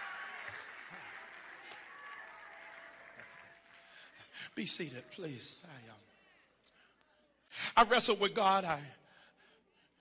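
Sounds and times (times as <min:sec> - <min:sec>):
congregation applauding: 0:00.0 - 0:05.6.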